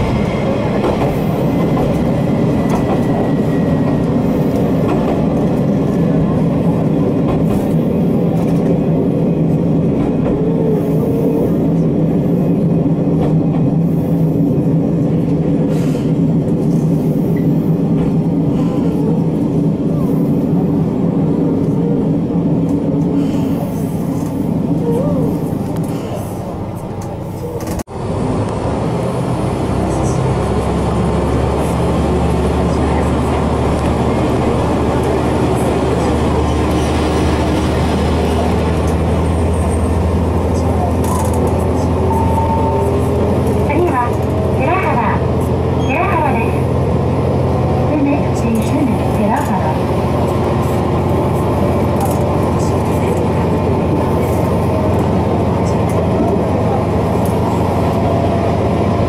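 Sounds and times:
diesel train engine drone: 0:00.0 - 0:59.0.

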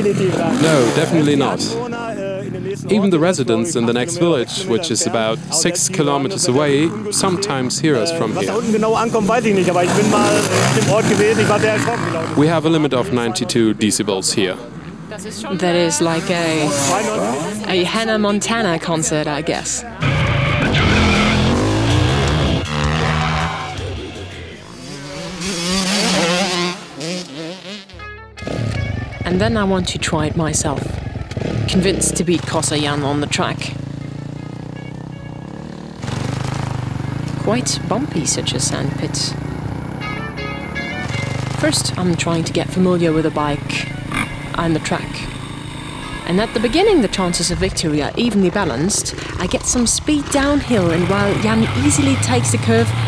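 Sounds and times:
man talking: 0:00.0 - 0:21.9
background music: 0:00.0 - 0:53.0
motorbike engines running: 0:00.0 - 0:53.0.

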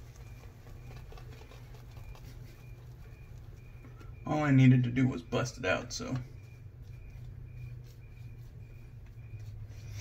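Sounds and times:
wet shaving brush strokes: 0:00.0 - 0:10.0.

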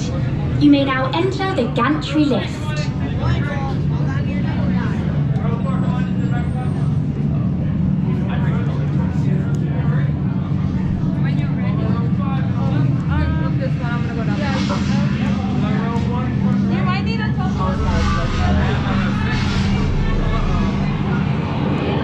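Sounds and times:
crowd chatter: 0:00.0 - 0:22.0
steady low hum: 0:00.0 - 0:22.0.

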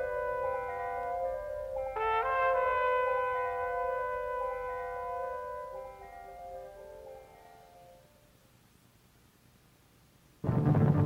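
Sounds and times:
soundtrack music with brass chords: 0:10.4 - 0:11.0.

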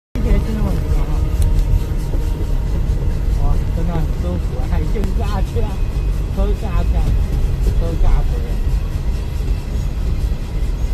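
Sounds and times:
people talking: 0:00.2 - 0:01.8, 0:03.2 - 0:08.7
car engine and road noise: 0:00.2 - 0:10.9.

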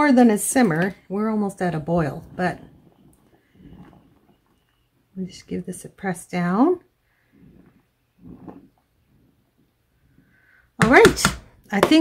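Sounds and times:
ladle moving through water: 0:00.2 - 0:10.6.

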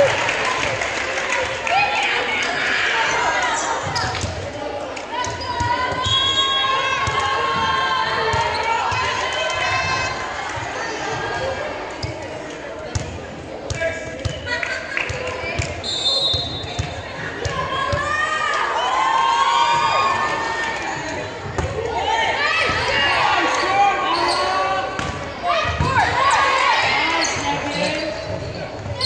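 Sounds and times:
players and spectators chatter: 0:00.0 - 0:29.0.

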